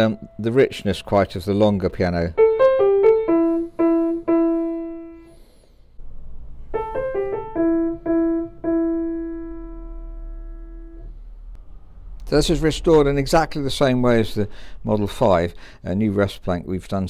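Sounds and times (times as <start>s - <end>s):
grand piano melodic phrase: 0.0s - 11.6s.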